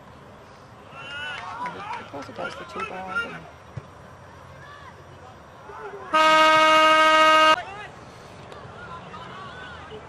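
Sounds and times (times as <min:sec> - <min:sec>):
loud steady horn blast: 0:06.1 - 0:07.6.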